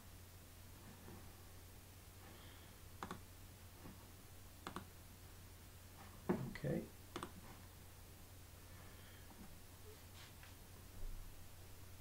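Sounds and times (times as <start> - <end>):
steady low hum: 0.0 - 12.0
computer mouse double clicks: 3.0 - 3.2.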